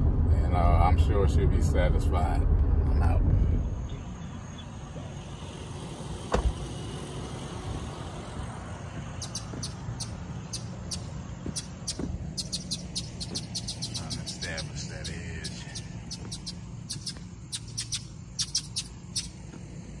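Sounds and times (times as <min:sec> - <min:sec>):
quiet outdoor hum: 0:00.0 - 0:20.0
vehicle cab rumble: 0:00.0 - 0:20.0.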